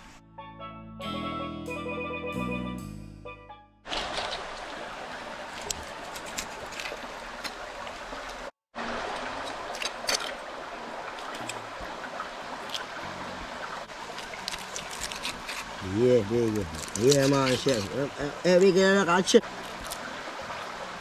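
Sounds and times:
running water: 3.9 - 21.0
knife scraping shells on stone: 14.2 - 15.8, 16.6 - 18.0.

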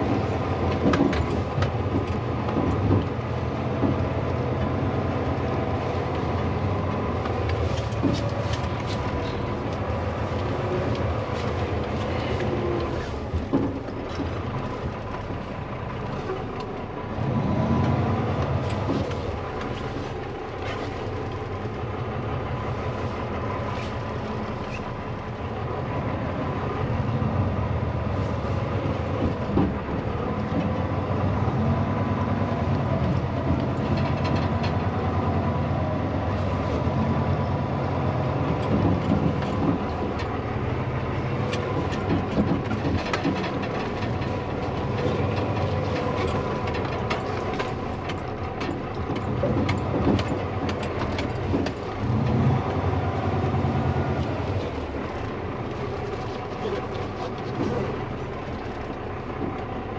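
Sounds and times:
cab clicks and rattles: 0.0 - 17.1, 28.6 - 59.9
diesel truck engine rumble: 0.0 - 59.9.

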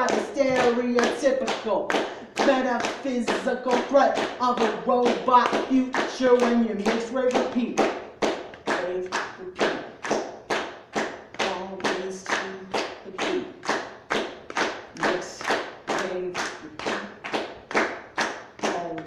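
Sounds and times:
audience clapping in unison: 0.0 - 19.0.

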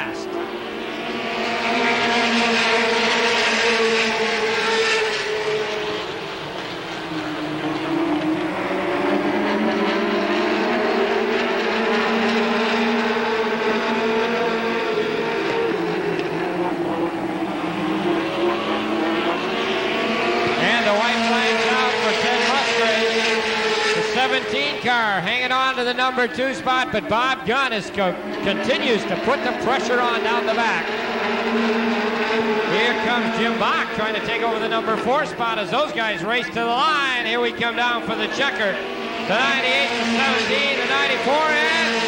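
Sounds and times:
race car engines at full throttle: 0.0 - 42.0.

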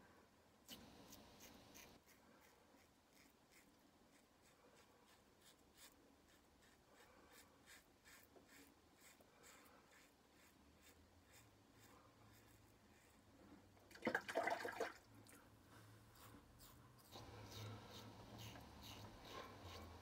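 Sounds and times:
razor scraping stubble: 0.7 - 12.7, 16.2 - 20.0.

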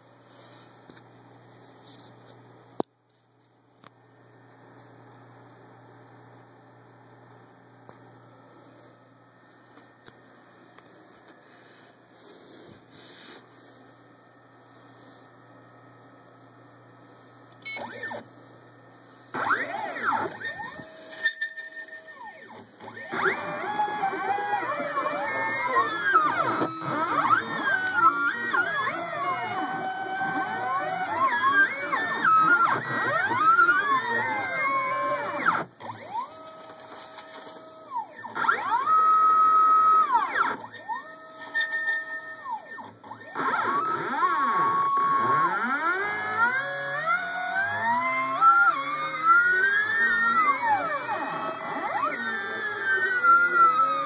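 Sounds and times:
stepper motors whining: 17.5 - 54.0.

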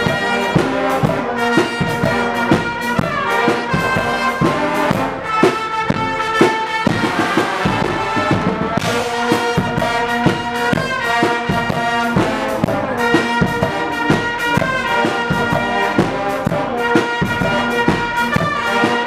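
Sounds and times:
bass drum and cymbal beat: 0.0 - 19.0
trumpets and trombones chords: 0.0 - 19.0.

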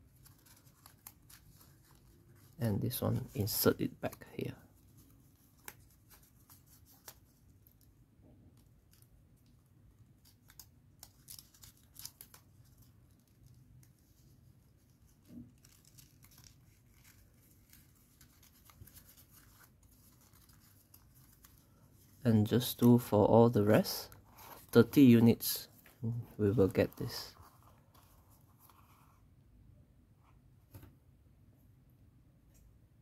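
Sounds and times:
paper crinkling and rustling: 0.0 - 29.2.

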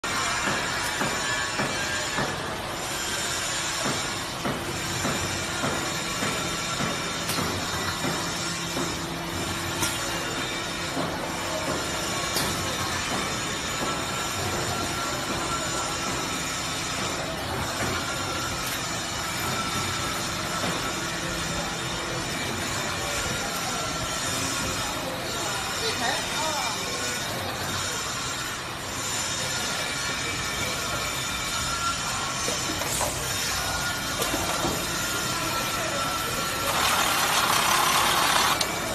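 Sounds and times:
machinery clicks and knocks: 36.6 - 38.9.

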